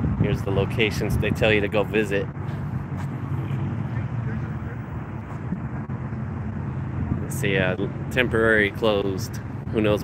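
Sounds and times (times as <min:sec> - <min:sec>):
low rumble of road traffic: 0:00.0 - 0:10.0.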